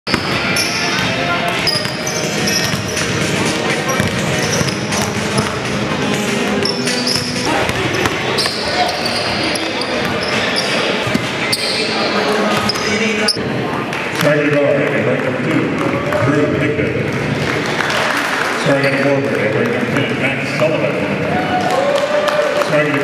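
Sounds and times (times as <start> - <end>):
sneakers squeaking on floor: 0.1 - 5.7, 6.6 - 13.4, 18.8 - 19.2
basketballs bouncing: 0.1 - 5.9, 6.6 - 11.7, 12.5 - 13.0
people talking: 0.6 - 5.8, 6.4 - 17.1, 18.6 - 21.1.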